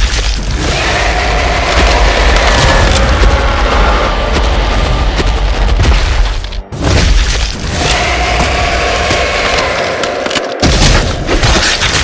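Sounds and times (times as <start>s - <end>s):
dinosaur roar: 0.6s - 5.7s.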